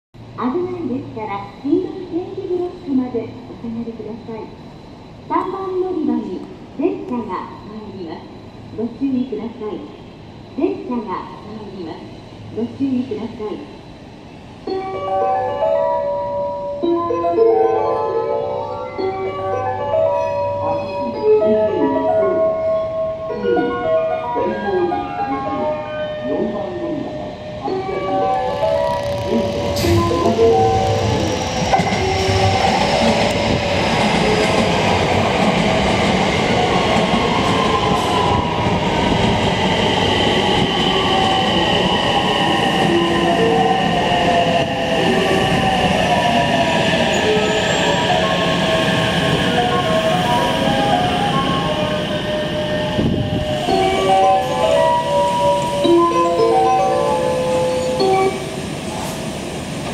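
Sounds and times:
train wheels rumbling on rails: 28.1 - 59.9.

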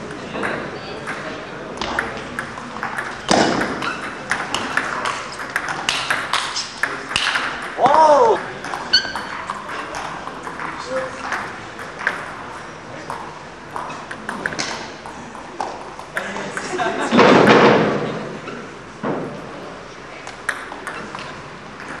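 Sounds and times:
voices in a hall: 0.0 - 22.0
table tennis ball clicking: 1.8 - 7.5.

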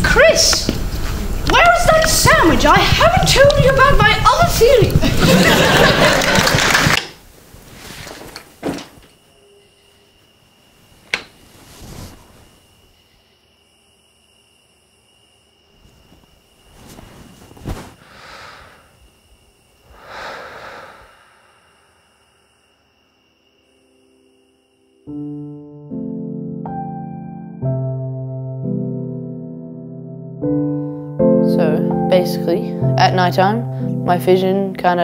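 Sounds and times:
slow soft breathing: 16.8 - 19.2, 19.8 - 22.4.

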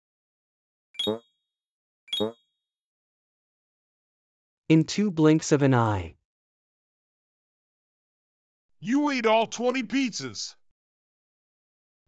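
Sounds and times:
cartoon falling tone with ding: 1.0 - 1.2, 2.1 - 2.4.

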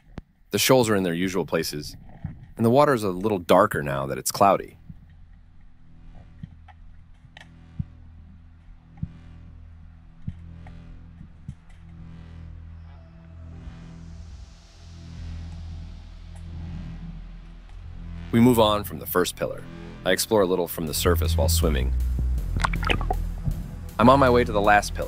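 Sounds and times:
low underwater hum: 4.7 - 24.4.

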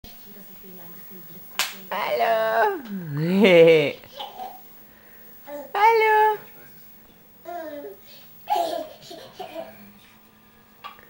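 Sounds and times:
adult speaking: 2.7 - 4.0.

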